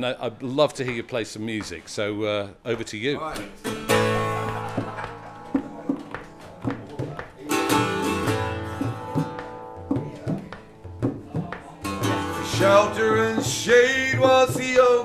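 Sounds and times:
plucked string instrument strumming: 3.5 - 15.0
tabla strikes: 3.9 - 15.0.

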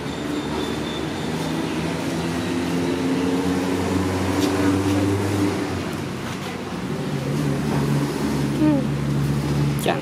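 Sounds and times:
engine hum: 0.0 - 10.0.

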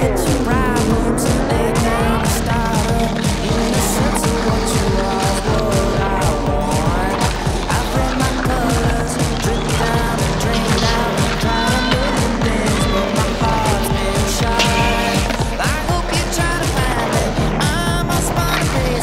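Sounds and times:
song with drum beat and bass: 0.0 - 19.0.

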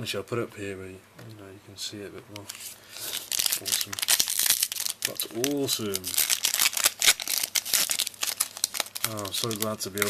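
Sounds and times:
foil wrapper crinkling: 2.5 - 10.0.

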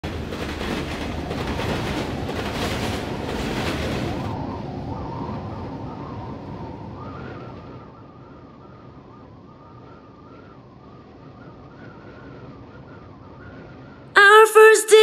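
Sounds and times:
train wheels clattering: 0.0 - 4.4
freight train rumbling: 0.0 - 8.0.

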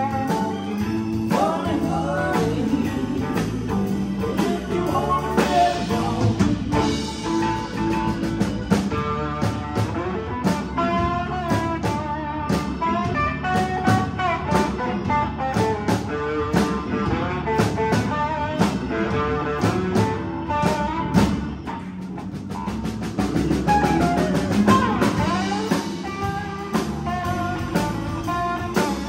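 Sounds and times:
drum kit beat: 0.0 - 29.0
electric guitar: 0.0 - 29.0.

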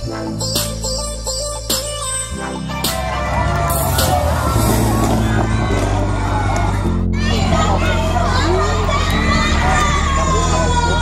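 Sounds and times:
electronic music with heavy bass: 0.0 - 11.0
crowd cheering: 2.5 - 11.0
crowd chatter: 2.6 - 11.0.

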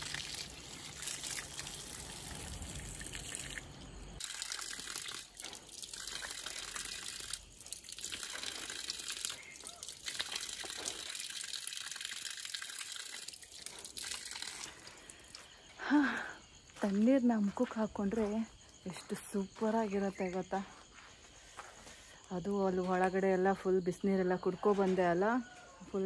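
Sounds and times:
water pouring and splashing: 0.0 - 15.6.

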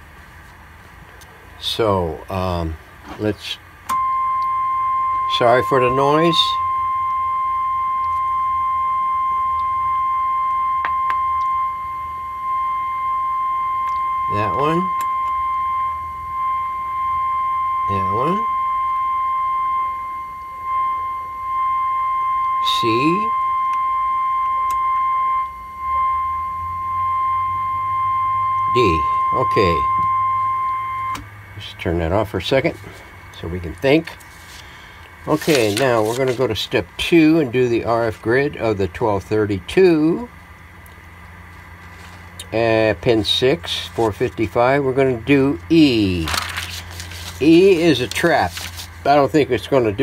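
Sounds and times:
steady radio test tone: 3.4 - 40.3, 41.4 - 50.0
low hum: 3.8 - 50.0.

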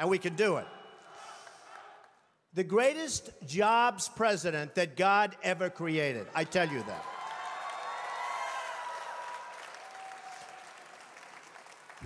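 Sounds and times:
audience applause: 6.4 - 12.0.

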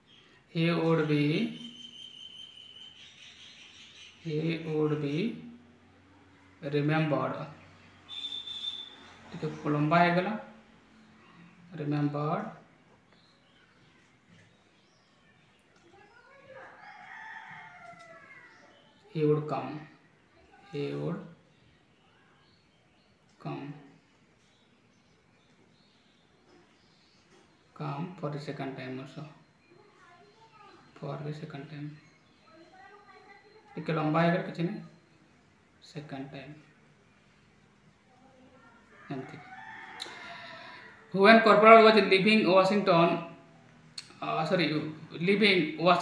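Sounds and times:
rooster crowing: 16.3 - 18.7, 38.9 - 41.2.

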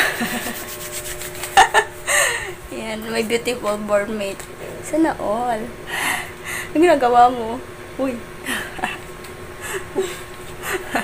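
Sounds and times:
person laughing: 0.0 - 0.7, 1.5 - 2.6, 8.5 - 11.0
soft rubbing of skin: 0.4 - 1.6.

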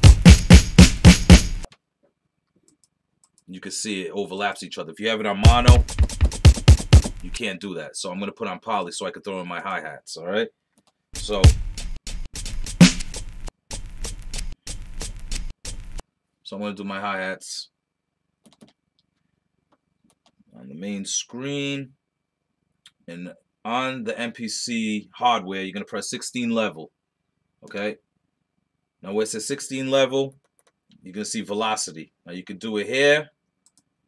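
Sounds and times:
punchy drum sample hits: 0.0 - 1.7, 5.4 - 7.4, 11.2 - 15.9.

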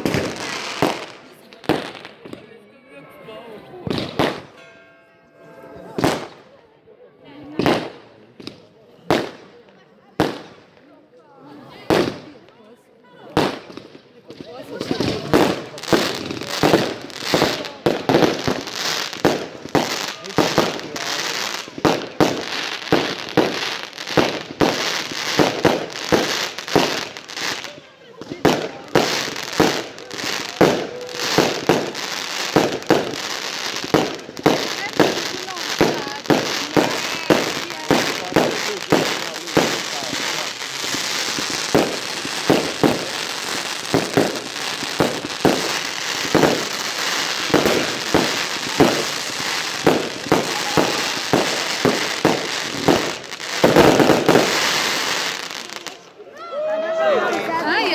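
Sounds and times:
fireworks bangs and crackle: 0.0 - 2.6, 3.6 - 4.7, 5.8 - 6.6, 7.2 - 56.7.

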